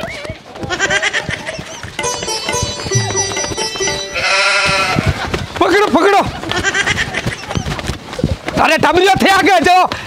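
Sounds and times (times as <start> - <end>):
goat bleating: 4.0 - 5.3, 6.4 - 7.6.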